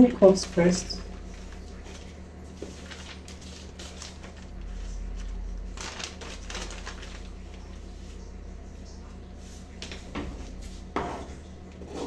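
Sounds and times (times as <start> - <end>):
paper rustling and crinkling: 0.3 - 8.3.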